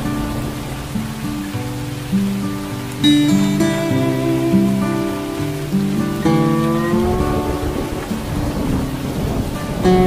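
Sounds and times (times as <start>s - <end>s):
soft guitar music: 0.0s - 10.0s
steady rain: 0.0s - 10.0s
low rumble of thunder: 7.1s - 10.0s.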